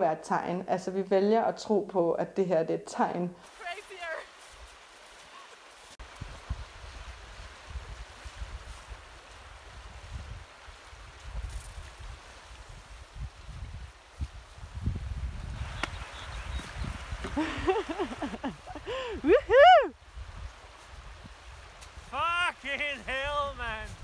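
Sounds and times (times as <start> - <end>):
person shouting in celebration: 3.6 - 4.3, 19.2 - 19.9, 22.1 - 24.0
wind rumbling on microphone: 6.0 - 22.2, 23.1 - 24.0
river rushing and splashing: 20.5 - 23.8.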